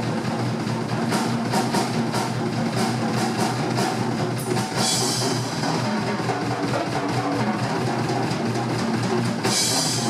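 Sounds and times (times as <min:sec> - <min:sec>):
drum kit played hard: 0:00.0 - 0:10.0
cymbals ringing: 0:04.4 - 0:06.8, 0:09.4 - 0:10.0.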